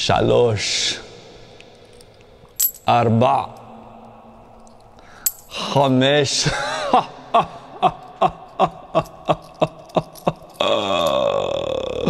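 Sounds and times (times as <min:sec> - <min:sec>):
man laughing: 0:06.3 - 0:11.0.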